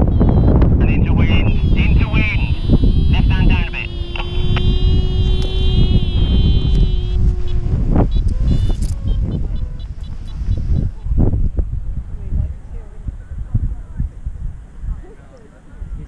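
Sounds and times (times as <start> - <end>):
steady pitched tone: 0.0 - 11.5
air buffeting microphone: 0.0 - 16.0.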